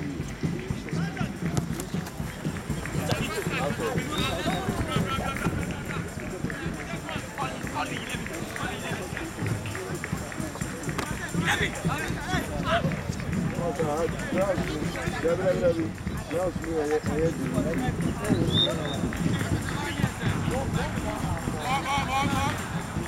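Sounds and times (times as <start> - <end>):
people shouting and calling: 1.0 - 13.0, 18.0 - 23.0.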